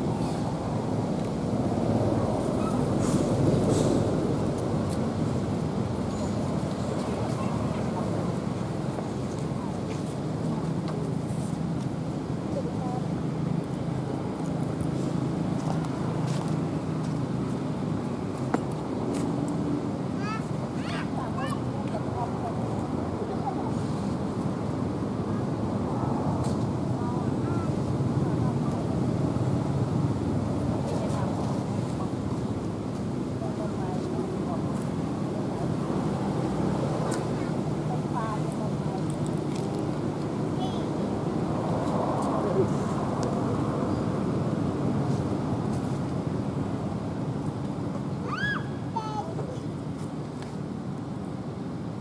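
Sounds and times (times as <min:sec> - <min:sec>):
outdoor background noise: 0:00.0 - 0:52.0
faint indistinct voices: 0:06.0 - 0:16.6, 0:20.0 - 0:44.3.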